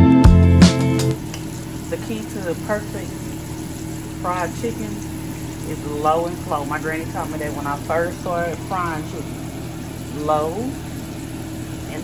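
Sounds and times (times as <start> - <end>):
background music: 0.0 - 1.2
chicken frying in oil: 1.1 - 12.0.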